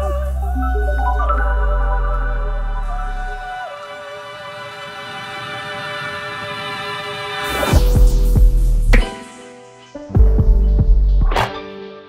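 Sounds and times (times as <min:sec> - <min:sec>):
deep throbbing bass pulses: 0:00.0 - 0:03.5, 0:07.6 - 0:09.1, 0:10.2 - 0:11.3
held synthesizer tones: 0:00.0 - 0:04.2
sharp swish: 0:07.4 - 0:09.4.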